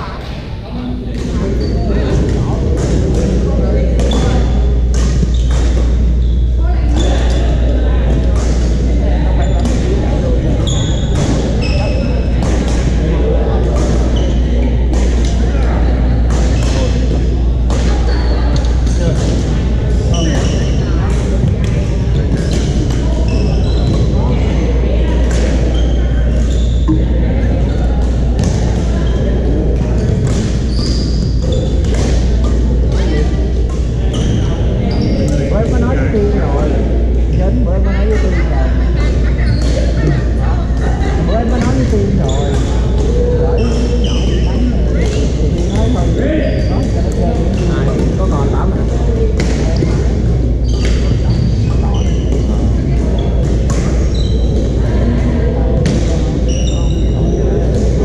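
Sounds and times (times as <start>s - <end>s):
players' voices: 0.0s - 58.0s
sneakers squeaking on wooden floor: 4.0s - 8.8s, 9.4s - 13.0s, 13.7s - 15.4s, 16.3s - 36.1s, 39.3s - 40.4s, 41.2s - 54.8s, 55.7s - 58.0s
shoes squeaking on wooden floor: 30.3s - 32.0s.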